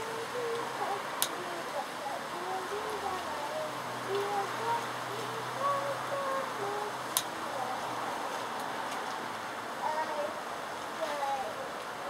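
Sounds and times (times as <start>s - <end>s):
steady hiss: 0.0s - 12.0s
faint muffled voices: 9.8s - 12.0s.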